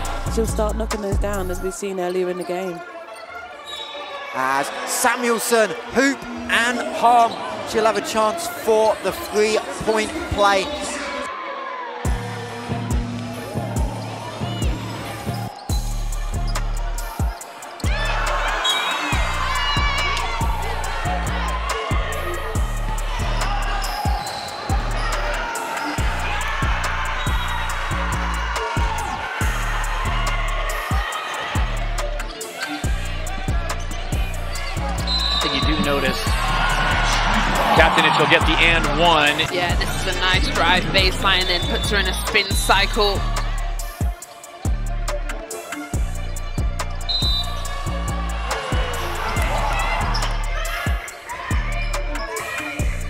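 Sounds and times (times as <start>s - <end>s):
heavy bass beat: 0.0s - 1.8s, 15.7s - 18.6s, 19.2s - 53.0s
vocals over music: 32.4s - 46.6s.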